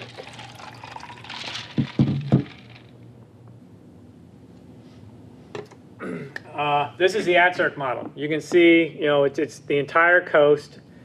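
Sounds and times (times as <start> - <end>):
liquid pouring: 0.0 - 2.9
knocks on microphone: 1.8 - 2.5.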